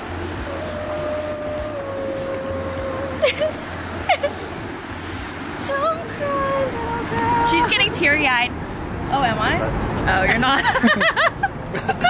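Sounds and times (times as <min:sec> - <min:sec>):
city traffic rumble: 0:00.0 - 0:12.0.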